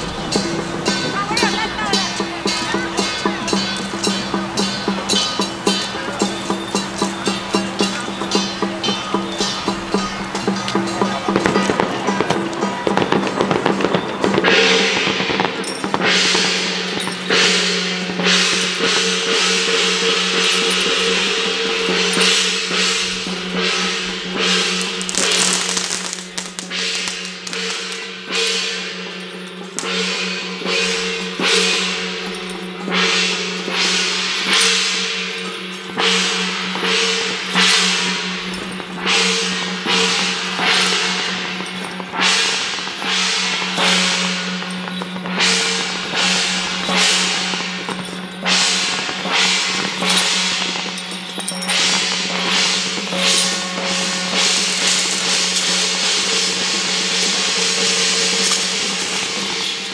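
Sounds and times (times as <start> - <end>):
gongs and cymbals struck: 0.0 - 59.9.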